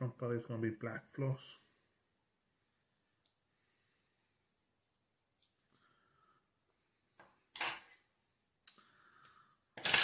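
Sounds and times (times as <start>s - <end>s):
person talking: 0.0s - 1.7s.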